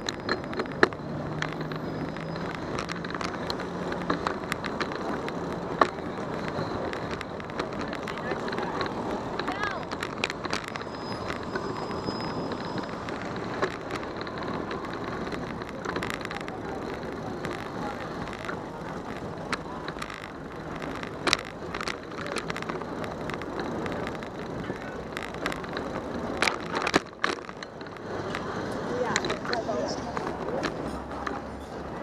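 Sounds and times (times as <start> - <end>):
bike rattling over bumps: 0.0 - 32.0
tyre and wind noise: 0.0 - 32.0.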